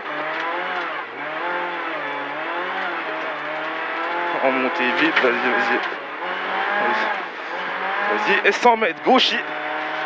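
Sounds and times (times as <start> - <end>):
car engine pulling under load: 0.0 - 10.0.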